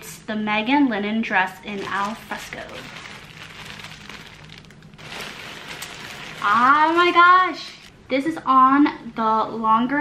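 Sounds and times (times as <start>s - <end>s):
plastic bag crinkling: 1.5s - 8.0s.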